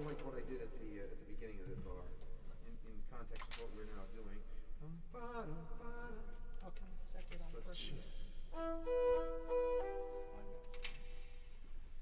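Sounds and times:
single click: 10.6s - 11.1s.

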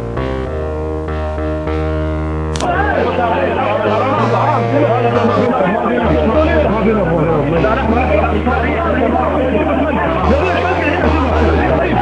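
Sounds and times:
men talking over one another: 2.6s - 12.0s.

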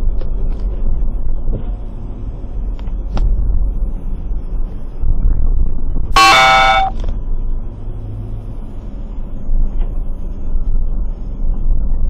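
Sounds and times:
car horn honk: 6.2s - 7.0s.

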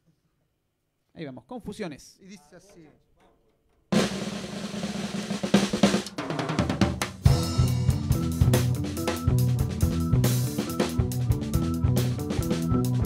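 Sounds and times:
fast snare and cymbal hits: 3.9s - 13.0s
live band instrumental: 4.0s - 13.0s
heavy low notes: 7.3s - 13.0s.

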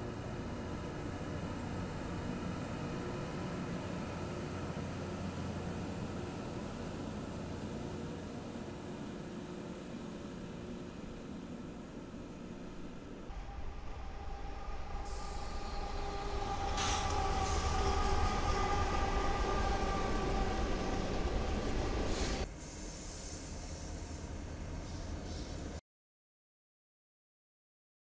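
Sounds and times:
freight train passing: 0.0s - 25.8s.

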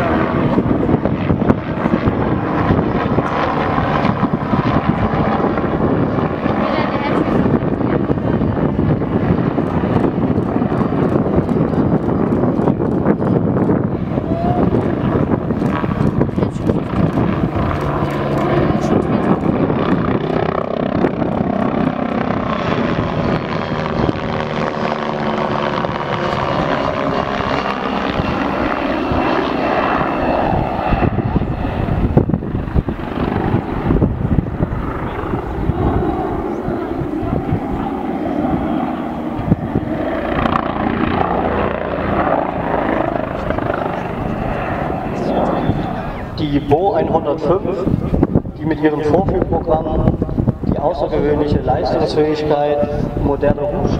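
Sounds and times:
helicopter rotor and turbine: 0.0s - 53.9s.

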